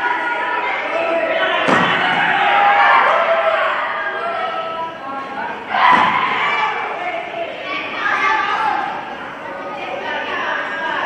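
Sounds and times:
spectators chattering: 0.0 - 11.0
sharp thud: 1.7 - 2.2.

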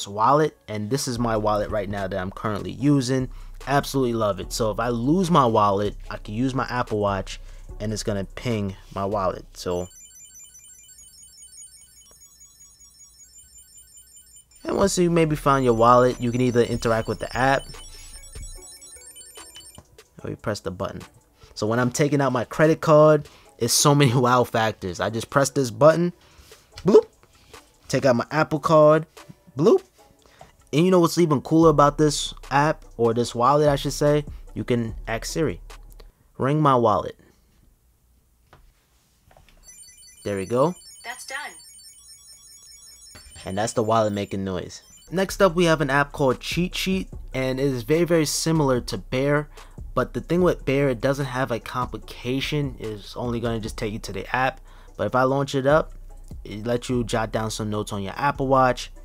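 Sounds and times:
high electronic beeps in a tune: 9.5 - 19.9, 39.6 - 47.5.

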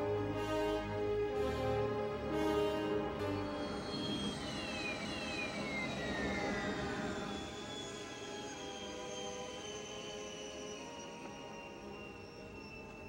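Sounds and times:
orchestral film score: 0.0 - 5.6
hovering engine whine: 0.0 - 13.0.

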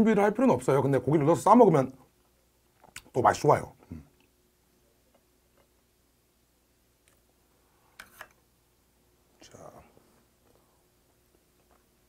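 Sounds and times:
softly spoken word: 9.4 - 10.0.

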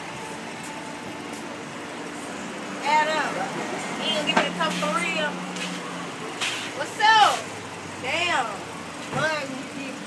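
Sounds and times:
street traffic hum: 0.0 - 10.0.

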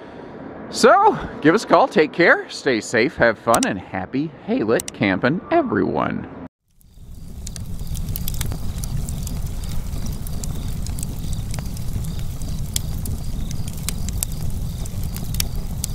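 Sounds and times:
fire crackles and pops: 6.6 - 15.9
wood fire burning: 6.6 - 15.9.

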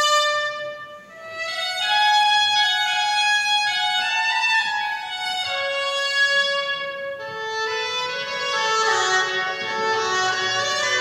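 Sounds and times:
shawm playing a melody: 0.0 - 11.0.

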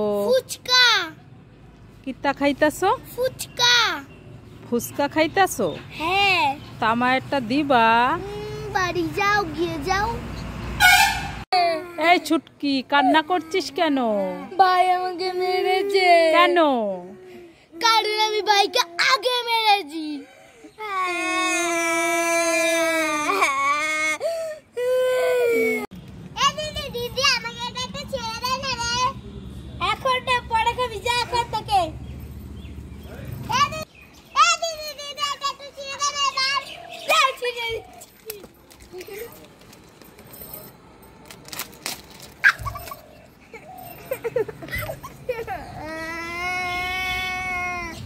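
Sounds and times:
child wailing: 20.8 - 25.9, 45.5 - 48.0.

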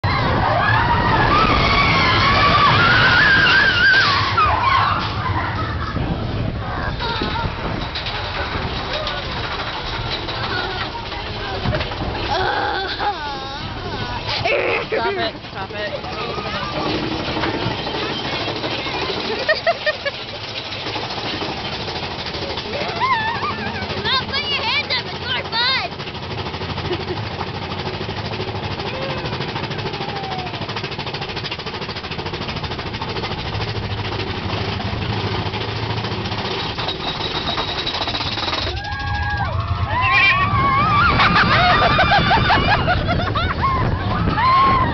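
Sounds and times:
roller coaster rumbling on track: 0.0 - 44.9.

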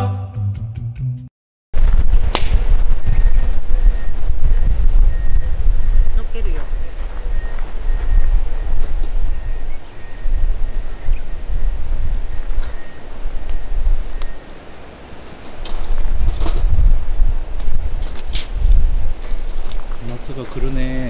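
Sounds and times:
wind gusting across microphone: 1.8 - 21.0.

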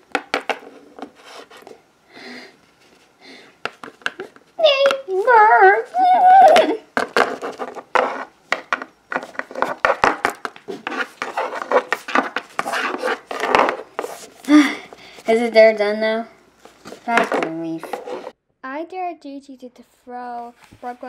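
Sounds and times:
child imitating horse whinny: 4.6 - 6.8.

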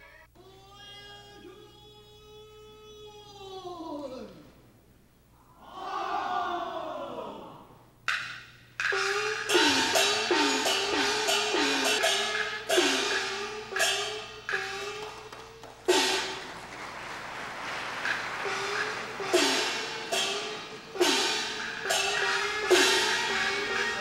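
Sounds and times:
clappers: 8.1 - 24.0
crashing cymbals: 8.2 - 16.7, 17.6 - 24.0
gongs with sliding pitch: 8.9 - 15.3, 18.4 - 24.0.

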